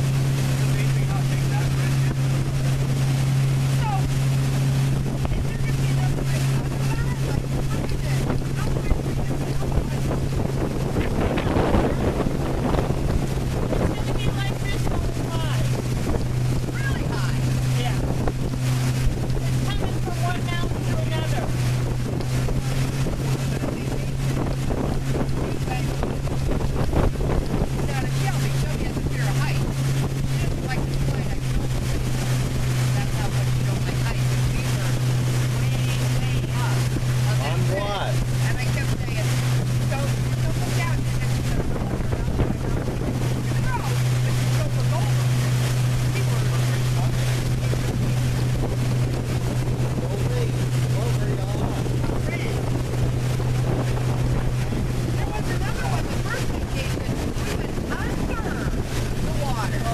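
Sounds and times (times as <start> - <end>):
boat motor droning: 0.0 - 59.9
wind buffeting microphone: 0.0 - 59.9.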